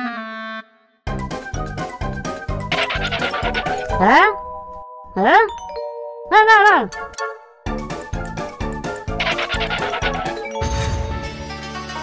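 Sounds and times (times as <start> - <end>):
upward-sliding cartoon calls: 2.7 - 4.4, 9.2 - 10.6.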